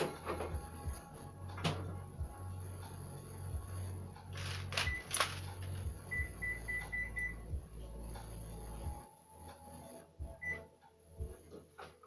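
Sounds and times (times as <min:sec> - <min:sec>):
high electronic beeps: 0:06.1 - 0:07.4.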